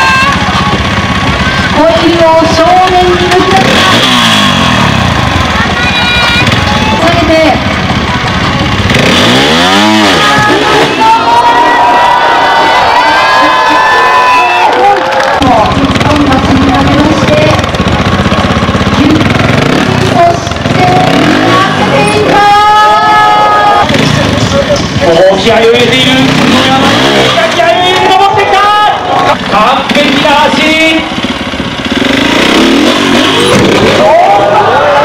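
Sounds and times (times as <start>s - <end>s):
people talking: 0.0s - 4.5s, 5.4s - 11.8s, 14.6s - 17.6s, 19.0s - 31.1s
crowd noise: 0.0s - 35.0s
motorcycle engine revving: 0.0s - 35.0s.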